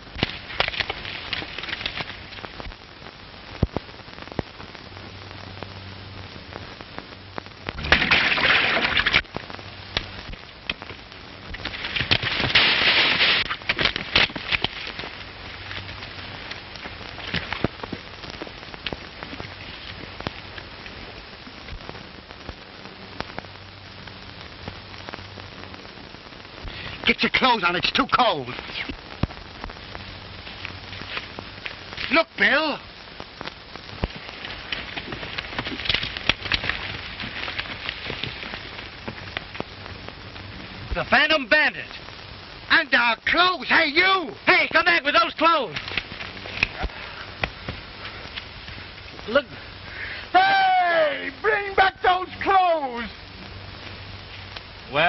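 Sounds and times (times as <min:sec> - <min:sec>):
film soundtrack hiss and crackle: 0:00.0 - 0:55.0.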